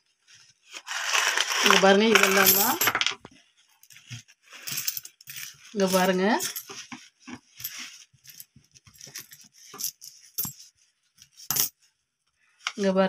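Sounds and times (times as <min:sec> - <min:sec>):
paper banknotes rustling: 0:00.5 - 0:02.9
metal coins clinking: 0:00.9 - 0:03.2, 0:04.6 - 0:06.8, 0:07.6 - 0:10.6, 0:11.4 - 0:11.7.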